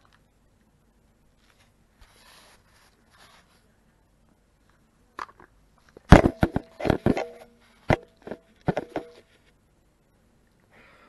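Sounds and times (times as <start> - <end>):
sharp knocks and clatters: 6.0 - 9.3.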